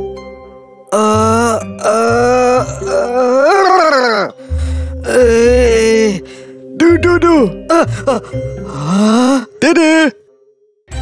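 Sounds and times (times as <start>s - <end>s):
background music: 0.0s - 11.0s
cartoon character whining: 1.2s - 4.3s.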